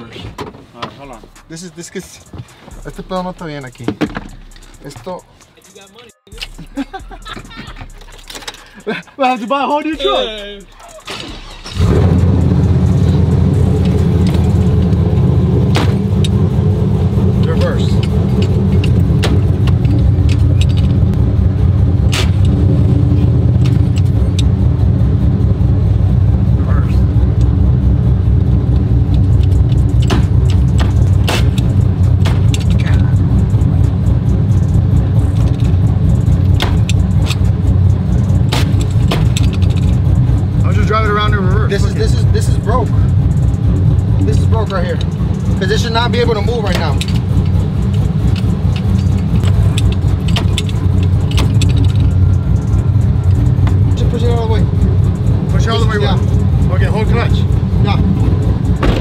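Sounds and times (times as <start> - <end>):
truck engine idling: 1.0 - 59.0
gear shifter clicks: 13.5 - 16.4, 17.8 - 21.2, 28.7 - 40.2, 43.3 - 58.8.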